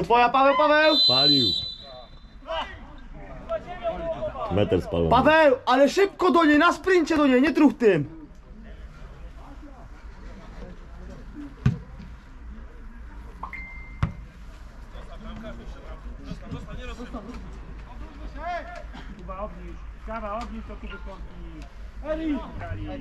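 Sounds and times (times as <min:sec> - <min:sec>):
whistle note: 0:00.9 - 0:02.4.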